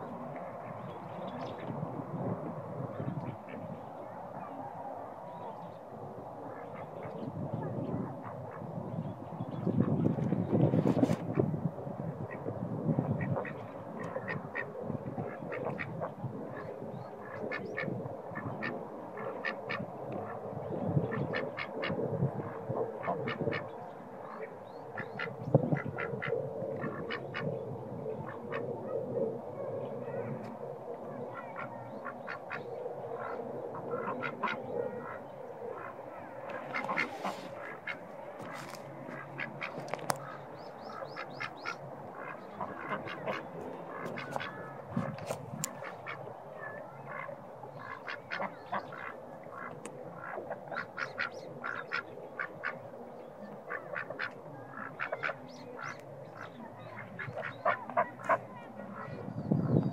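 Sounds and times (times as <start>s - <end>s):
ducks quacking: 12.2s - 27.5s, 31.2s - 59.9s.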